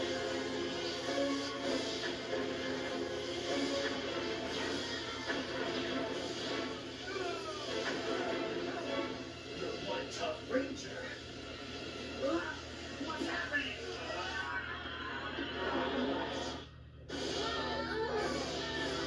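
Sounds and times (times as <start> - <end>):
dramatic music from television: 0.0 - 19.0.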